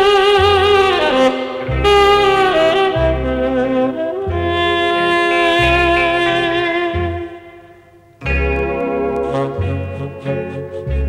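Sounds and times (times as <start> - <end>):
low accompaniment: 0.0 - 11.0
saxophone long held notes: 0.0 - 11.0.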